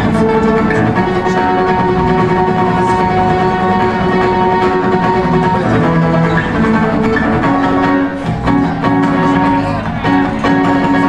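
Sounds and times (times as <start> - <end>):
acoustic guitars: 0.0 - 11.0
electric bass: 0.0 - 11.0.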